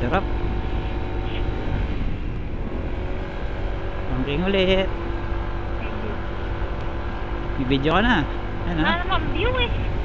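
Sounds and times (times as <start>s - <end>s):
wind rumble on microphone: 0.0s - 4.3s, 8.5s - 10.0s
scooter engine running: 0.0s - 10.0s.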